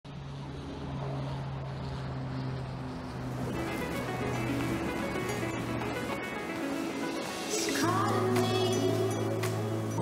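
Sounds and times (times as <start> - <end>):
low engine drone: 0.0 - 10.0.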